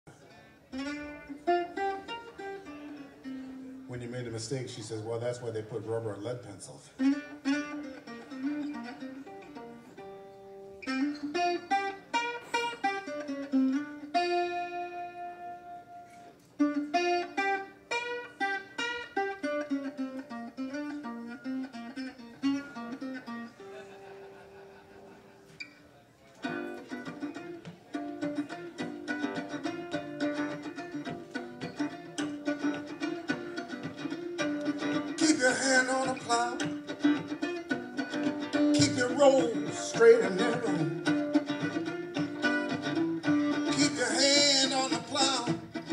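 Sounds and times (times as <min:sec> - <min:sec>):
mandolin playing: 0:00.1 - 0:45.9
harmonica notes: 0:00.7 - 0:04.4, 0:07.0 - 0:24.1, 0:26.4 - 0:45.9.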